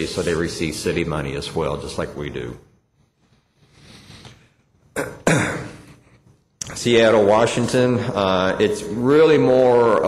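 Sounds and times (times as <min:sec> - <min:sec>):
faint breath: 0:03.5 - 0:04.7
man coughing: 0:04.9 - 0:06.1.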